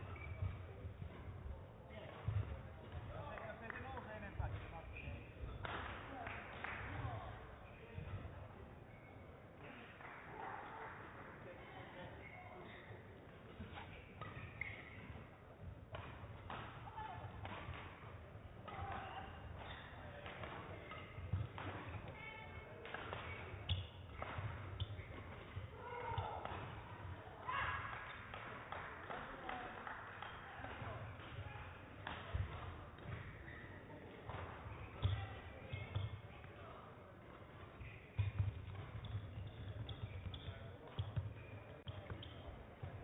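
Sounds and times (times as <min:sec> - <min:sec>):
indistinct voices in a hall: 0:00.0 - 0:43.0.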